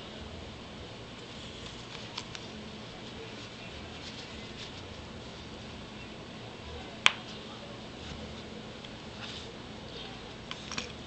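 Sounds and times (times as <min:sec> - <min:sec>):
fabric bag handling: 0:01.6 - 0:05.4.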